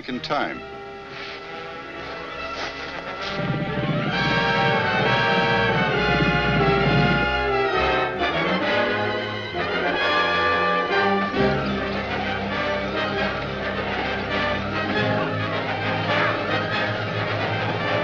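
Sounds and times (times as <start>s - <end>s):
orchestral music led by brass: 0.0s - 18.0s.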